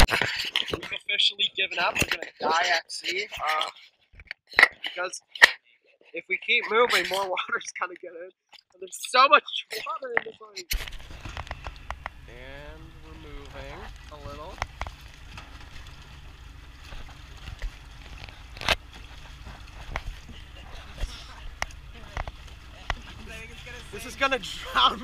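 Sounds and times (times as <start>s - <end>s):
water splashing against boat hull: 10.2s - 25.0s
low rumble: 10.7s - 25.0s
water slapping on hull: 10.7s - 25.0s.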